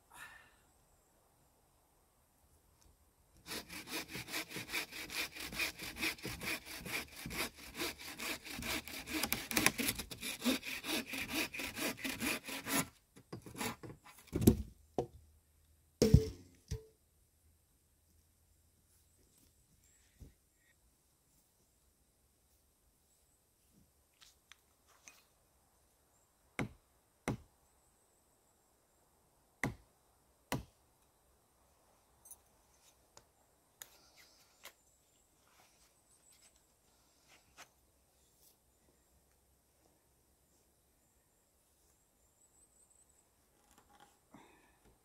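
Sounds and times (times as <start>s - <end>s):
saw landing on ground: 16.0s - 16.9s
light rustles of hand work: 22.4s - 25.4s, 33.8s - 40.7s.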